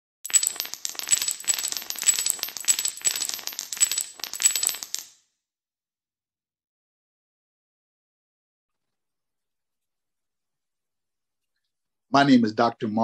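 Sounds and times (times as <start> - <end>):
rapid clatter of small clinks: 0.3 - 5.1.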